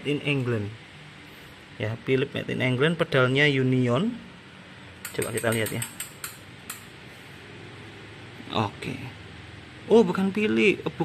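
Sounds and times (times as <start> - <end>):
faint steady background noise: 0.0 - 11.0
bicycle pedal clicks: 5.0 - 6.9.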